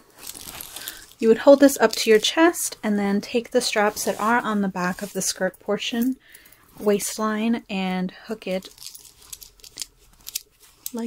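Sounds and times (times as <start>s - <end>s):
metal strap hooks clicking: 8.7s - 11.0s.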